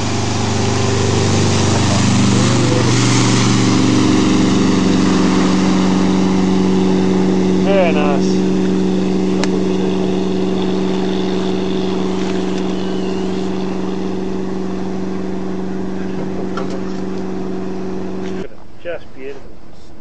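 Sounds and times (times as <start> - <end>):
speedboat engine running: 0.0 - 18.5.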